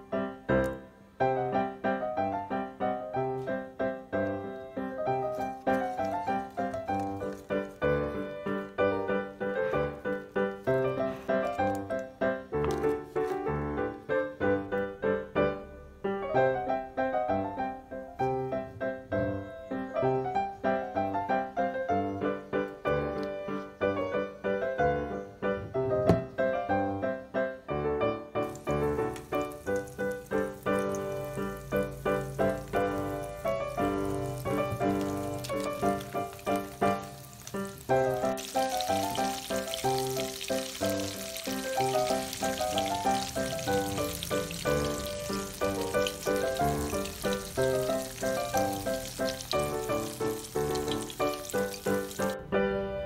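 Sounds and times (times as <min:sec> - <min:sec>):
piano music with beat: 0:00.0 - 0:53.0
food deep-frying in oil: 0:05.1 - 0:08.1, 0:28.4 - 0:52.4.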